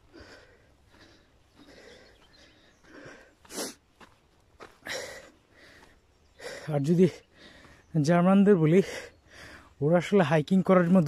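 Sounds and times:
person breathing hard: 0:00.0 - 0:07.9, 0:08.8 - 0:09.8.

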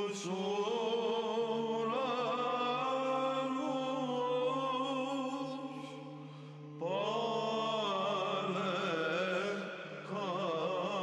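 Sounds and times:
held vocal drone: 0:00.0 - 0:11.0.

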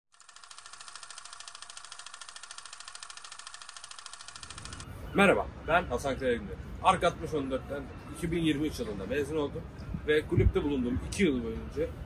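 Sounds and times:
film camera clicking: 0:00.2 - 0:04.9.

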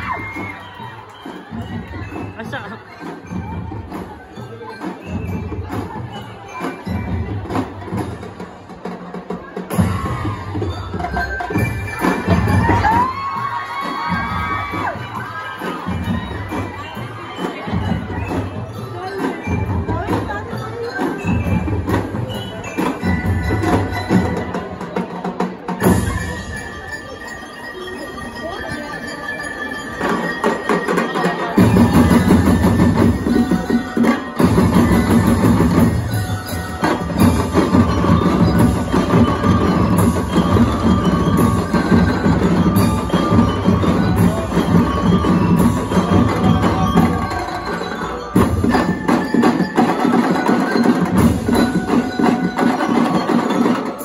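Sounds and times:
bell lyres playing melody: 0:00.0 - 0:54.0
marching drums and percussion: 0:00.0 - 0:54.0.

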